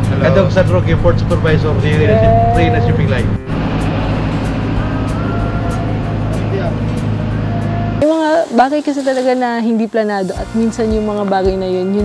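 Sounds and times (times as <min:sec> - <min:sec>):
ship engines droning: 0:00.0 - 0:09.5
music playing: 0:00.0 - 0:12.0
faint voices: 0:01.4 - 0:03.4.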